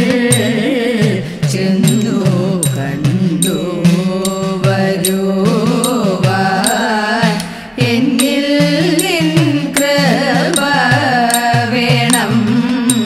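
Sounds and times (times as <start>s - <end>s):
hourglass drum strikes: 0.0s - 13.0s
women's chorus singing: 0.0s - 13.0s.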